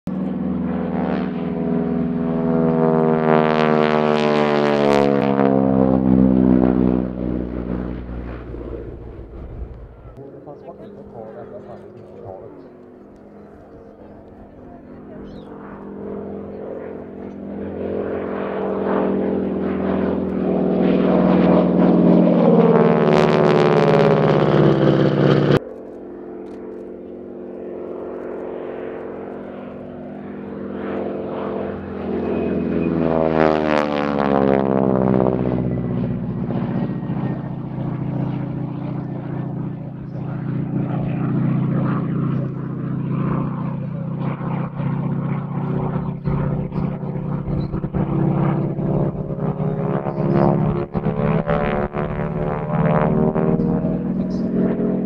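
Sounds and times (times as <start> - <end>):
propeller plane engine passing: 0.1 - 55.0.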